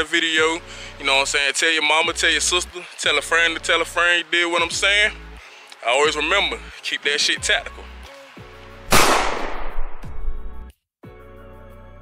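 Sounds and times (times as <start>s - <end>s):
background music with steady beat: 0.0s - 12.0s
sharp loud bang with ringing: 8.9s - 10.2s.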